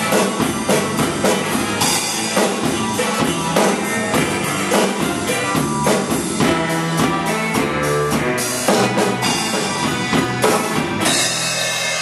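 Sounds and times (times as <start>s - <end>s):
backing track with guitar and bass: 0.0s - 12.0s
drum kit rock groove: 0.0s - 12.0s.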